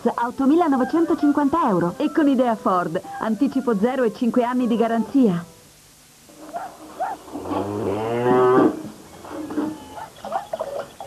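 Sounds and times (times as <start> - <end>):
cow mooing: 6.5 - 9.0.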